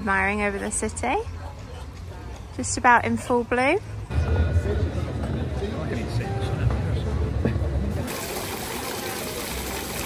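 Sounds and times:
fountain water splashing: 8.0s - 10.0s.

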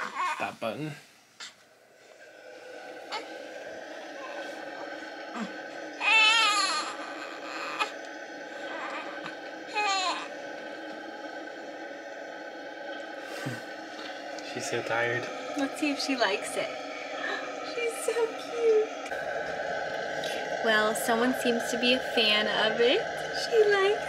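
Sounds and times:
newborn crying: 0.0s - 0.5s, 5.4s - 8.0s, 8.6s - 10.3s
white noise: 0.4s - 24.0s.

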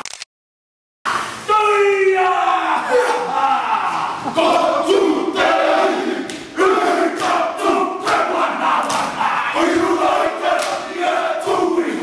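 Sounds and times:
men shouting a chant in unison: 1.5s - 12.0s.

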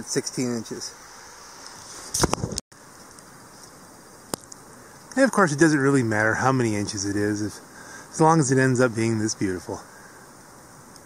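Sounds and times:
wind hiss: 0.0s - 11.0s.

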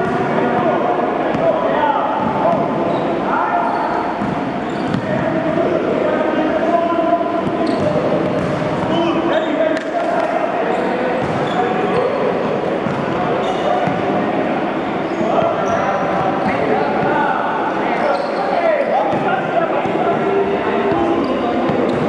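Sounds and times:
basketballs bouncing on gym floor: 4.2s - 5.4s, 7.4s - 9.4s, 11.2s - 12.1s, 12.8s - 13.2s, 19.1s - 20.1s.

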